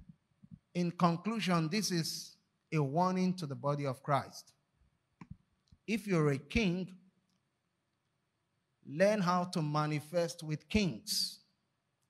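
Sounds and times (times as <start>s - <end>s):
man speaking into a microphone: 0.8s - 4.5s, 5.9s - 6.9s, 8.9s - 11.4s.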